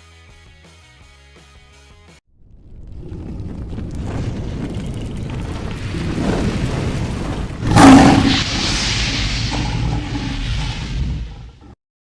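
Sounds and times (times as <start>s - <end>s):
low rumble: 2.3s - 11.8s
boom-like impact: 2.7s - 11.8s
sustained hiss: 7.7s - 11.6s.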